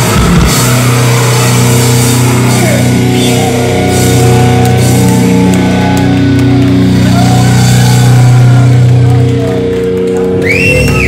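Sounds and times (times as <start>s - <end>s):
distorted guitar chord ringing: 0.0s - 10.4s
metal band playing live: 0.0s - 11.0s.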